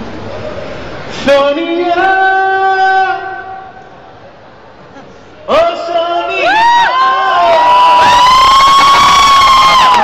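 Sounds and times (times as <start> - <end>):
crowd cheering: 6.2 - 10.0.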